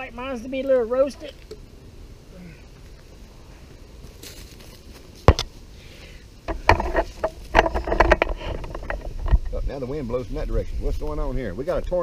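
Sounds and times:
knocks and crackles: 4.1 - 5.6, 6.4 - 10.3
wind buffeting microphone: 6.6 - 12.0.

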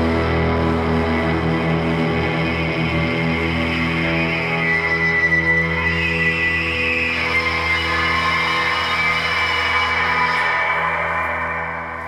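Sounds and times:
electric guitar drone: 0.0 - 12.0.

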